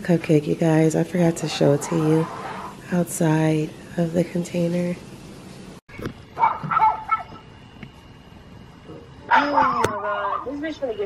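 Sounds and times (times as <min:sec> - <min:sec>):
dog barking: 0:06.4 - 0:07.4.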